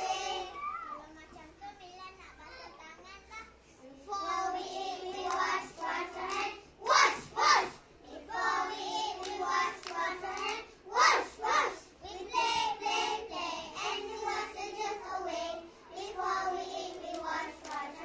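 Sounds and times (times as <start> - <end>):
children shouting: 0.0 - 1.1.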